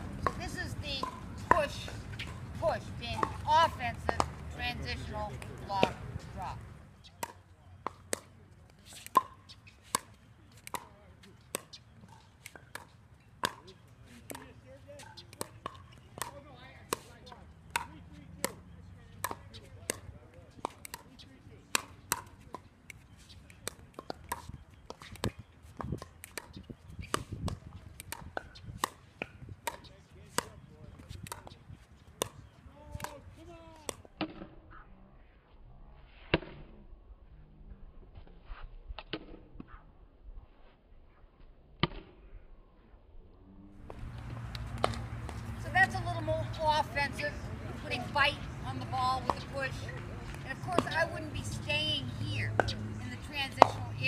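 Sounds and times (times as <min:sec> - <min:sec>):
paddles hitting plastic ball: 0:19.2 - 0:33.2, 0:43.8 - 0:45.5.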